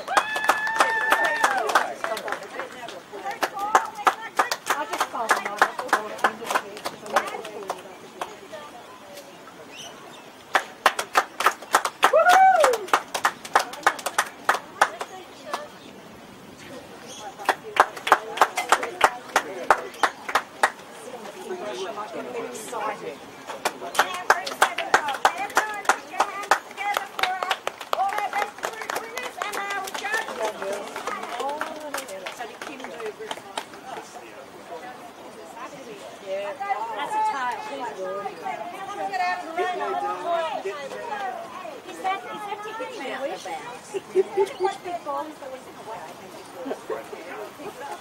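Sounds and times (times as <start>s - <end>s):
people clapping: 0.0s - 8.7s, 10.4s - 15.9s, 17.2s - 34.8s, 38.4s - 44.9s
people talking indistinctly: 0.0s - 48.0s.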